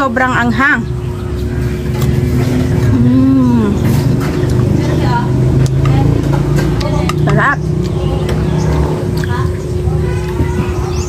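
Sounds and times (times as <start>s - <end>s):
chewing crunchy mango: 1.6s - 6.2s.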